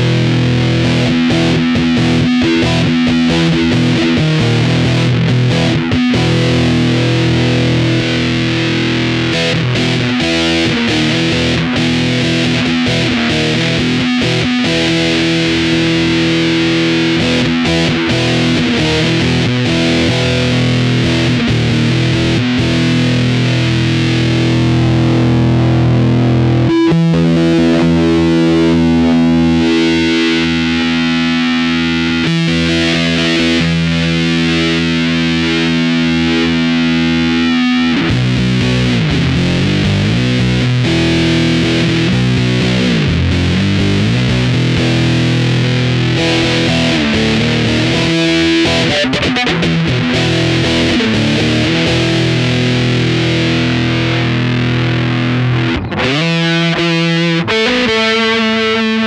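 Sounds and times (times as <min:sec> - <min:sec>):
distorted electric guitar riffs: 0:00.0 - 0:59.0
guitar chord ringing: 0:00.0 - 0:59.0.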